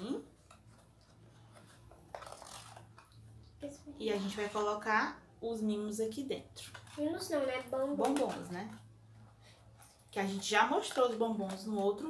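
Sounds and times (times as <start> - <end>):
cardboard box crinkling: 1.5 - 3.0.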